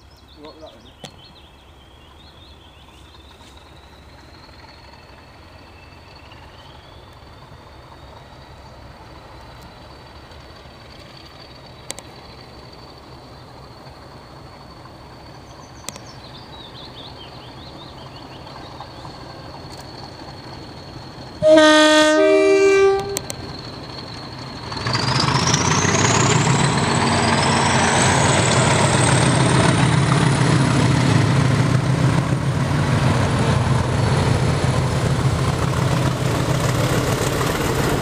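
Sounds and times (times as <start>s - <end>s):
birds chirping: 0.0s - 7.4s, 15.2s - 21.3s
diesel locomotive engine rumble: 0.0s - 38.0s.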